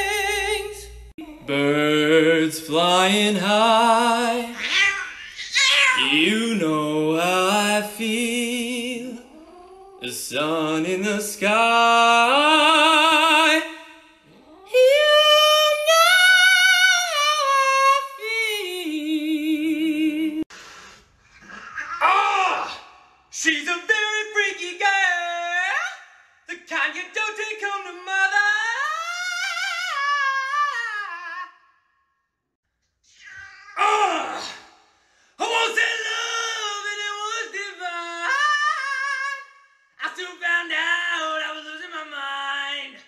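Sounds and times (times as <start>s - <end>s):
man singing unaccompanied: 0.0s - 4.6s, 6.0s - 9.3s, 10.0s - 14.1s, 35.4s - 43.0s.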